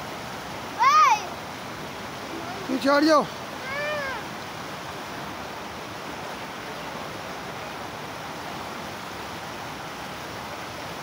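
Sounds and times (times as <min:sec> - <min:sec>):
floodwater rushing: 0:00.0 - 0:11.0.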